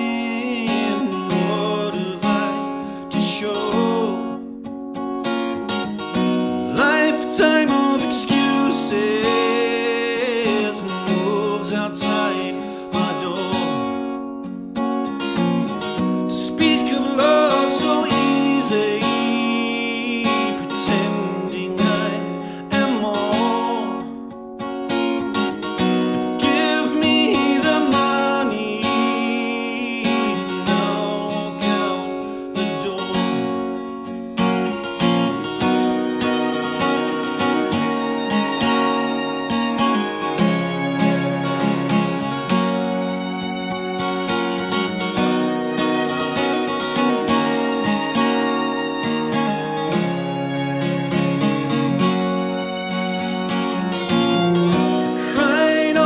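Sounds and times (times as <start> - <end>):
man singing: 0.0 - 4.5, 6.6 - 14.2, 16.3 - 24.2, 26.1 - 33.9, 53.9 - 56.0
strummed acoustic guitar: 0.0 - 56.0.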